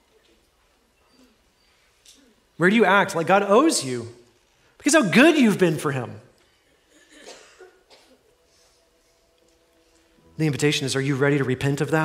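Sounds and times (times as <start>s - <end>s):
man speaking: 2.6s - 6.3s, 10.4s - 12.0s
faint brief cough: 6.8s - 8.4s.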